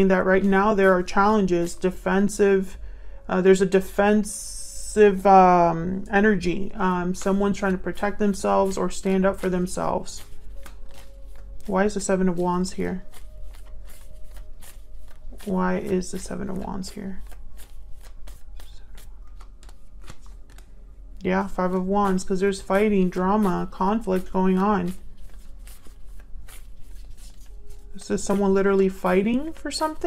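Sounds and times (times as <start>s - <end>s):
cards being shuffled: 6.8s - 20.8s, 21.4s - 30.0s.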